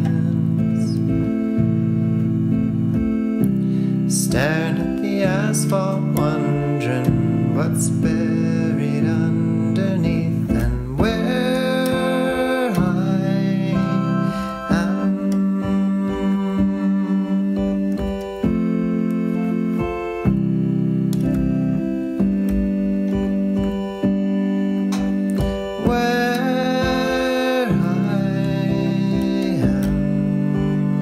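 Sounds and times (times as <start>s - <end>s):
guitar and keyboard chords: 0.0s - 31.0s.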